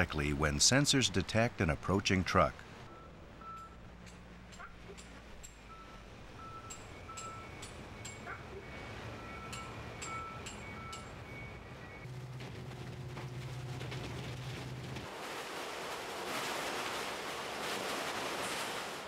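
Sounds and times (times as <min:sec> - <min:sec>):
truck engines and machinery hum: 0:00.0 - 0:15.2
electronic warning beeps: 0:02.9 - 0:03.8, 0:05.7 - 0:12.1.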